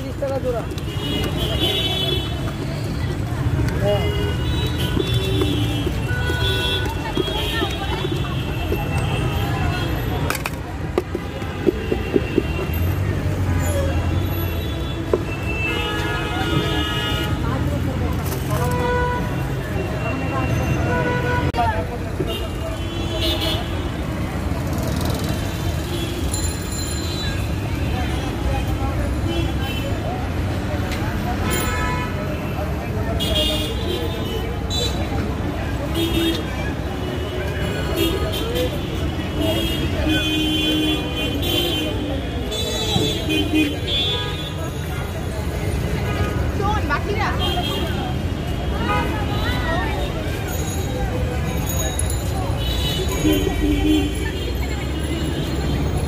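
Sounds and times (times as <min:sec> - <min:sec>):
people talking: 0:00.0 - 0:14.1, 0:27.6 - 0:56.0
low street rumble: 0:00.0 - 0:56.0.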